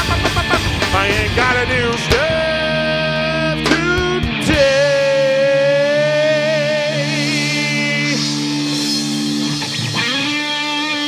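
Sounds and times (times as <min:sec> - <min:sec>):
person singing: 0:00.0 - 0:08.8
guitar: 0:00.0 - 0:11.0
live rock band playing: 0:00.0 - 0:11.0.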